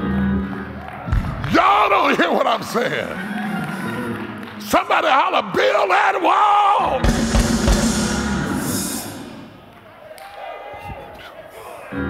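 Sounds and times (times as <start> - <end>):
bass drum hits: 7.0 - 9.5
cymbals: 7.0 - 9.7.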